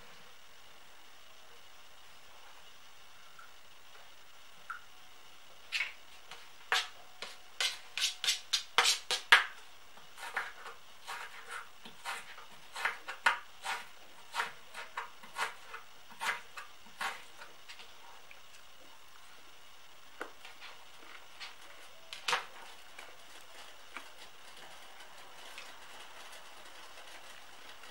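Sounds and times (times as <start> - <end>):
knife chopping on cutting board: 10.2 - 17.2.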